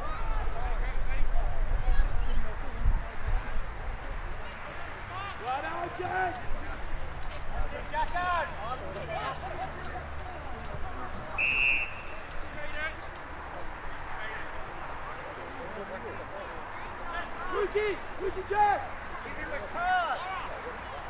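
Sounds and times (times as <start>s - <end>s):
players shouting: 4.8s - 6.6s, 13.6s - 21.0s
whistle blast: 11.4s - 12.3s.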